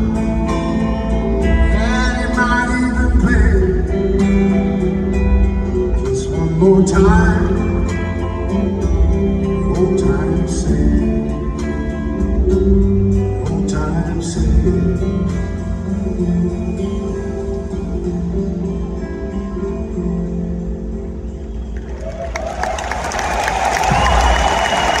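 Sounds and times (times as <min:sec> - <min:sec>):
acoustic guitar with live band: 0:00.0 - 0:25.0
crowd applause and cheering: 0:21.6 - 0:25.0.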